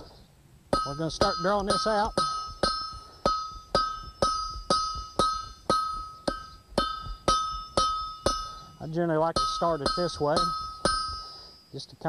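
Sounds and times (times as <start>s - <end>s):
hammer striking iron on anvil: 0.7s - 11.6s.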